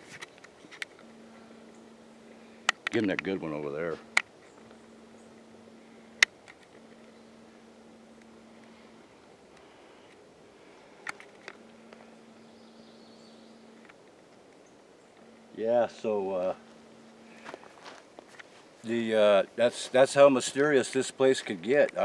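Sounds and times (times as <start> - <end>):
faint low hum: 0.0 - 22.0
small clicks: 11.0 - 12.5, 13.2 - 15.5.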